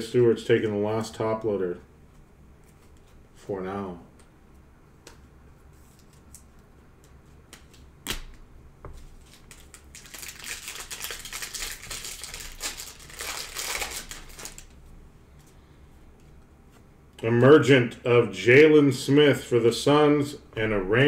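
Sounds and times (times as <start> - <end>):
foil wrapper crinkling and tearing: 9.2 - 14.8.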